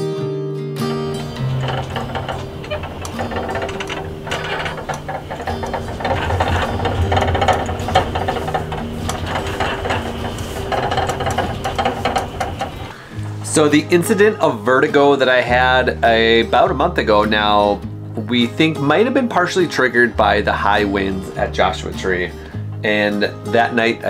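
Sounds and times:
acoustic guitar music: 0.2 - 24.0
creaking and groaning: 0.9 - 13.7
awning rattling in wind: 1.0 - 13.6.

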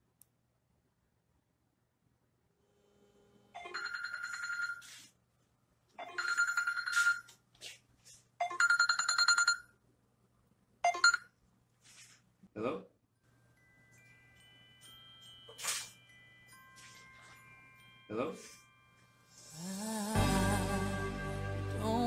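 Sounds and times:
smartphone ringtone trilling: 3.6 - 5.1, 6.0 - 7.3, 8.4 - 9.7, 10.8 - 11.3.

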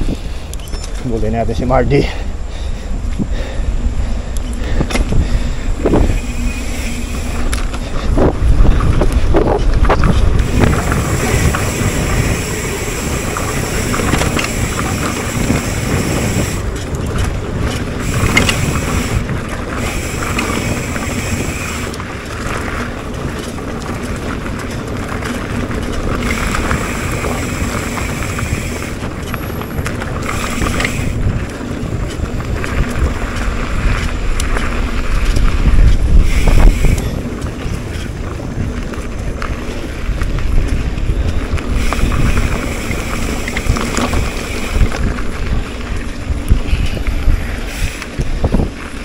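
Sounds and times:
bike tyres rolling on dirt: 0.0 - 49.0
wind rushing over microphone: 0.0 - 49.0
bike knocks and rattles: 4.6 - 49.0.

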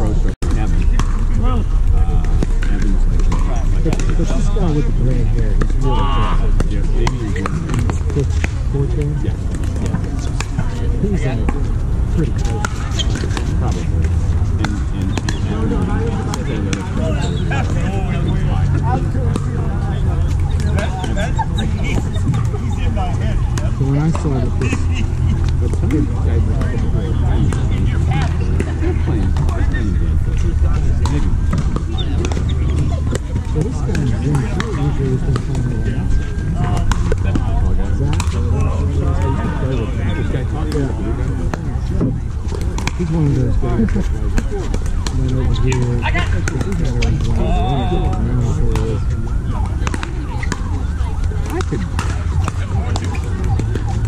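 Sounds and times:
indistinct chatter: 0.0 - 54.0
paddles popping against ball: 51.4 - 54.0.

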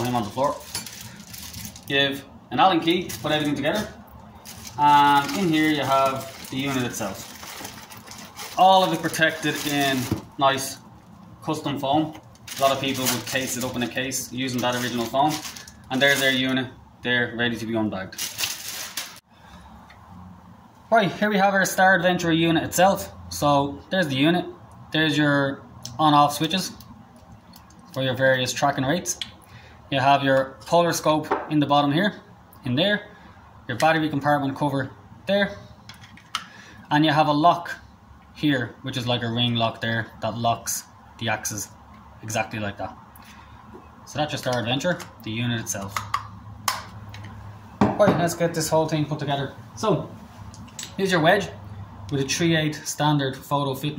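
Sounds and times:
plastic bag crinkling: 0.0 - 2.0, 2.8 - 10.7, 12.0 - 16.7, 18.1 - 19.2.

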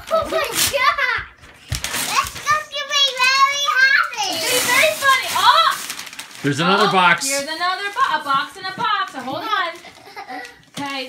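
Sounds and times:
children's voices: 0.0 - 1.4, 2.0 - 5.9.

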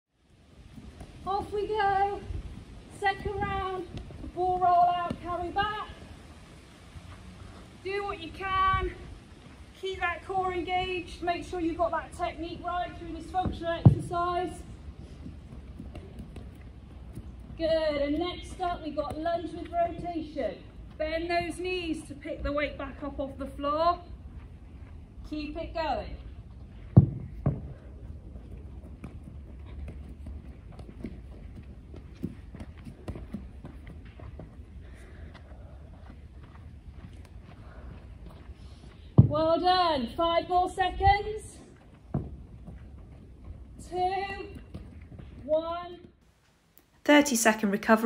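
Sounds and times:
wind rumble on microphone: 0.2 - 46.2
light footsteps: 0.6 - 23.2, 23.8 - 47.0
medicine ball thudding on turf: 13.4 - 14.5, 26.9 - 27.8, 39.1 - 39.5.

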